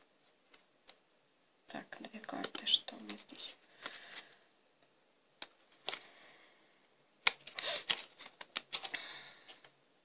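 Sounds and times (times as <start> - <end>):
cards being shuffled: 2.1 - 4.3, 5.4 - 6.1, 7.2 - 9.8.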